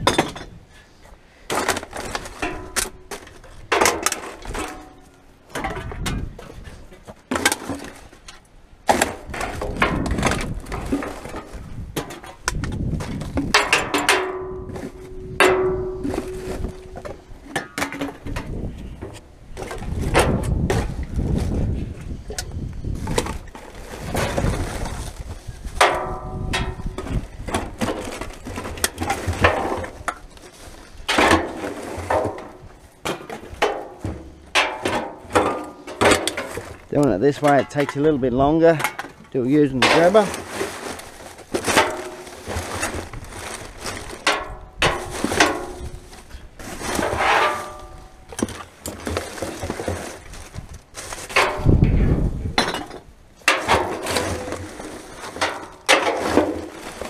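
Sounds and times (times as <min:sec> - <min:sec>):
rubbish rummaged in metal bin: 0:01.5 - 0:57.0
cans and bottles clinking: 0:08.9 - 0:19.0, 0:25.7 - 0:52.0, 0:52.6 - 0:57.0.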